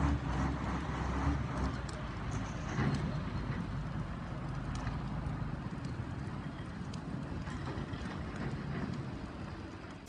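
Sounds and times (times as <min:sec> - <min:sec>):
burning waste crackling: 0:00.0 - 0:10.0.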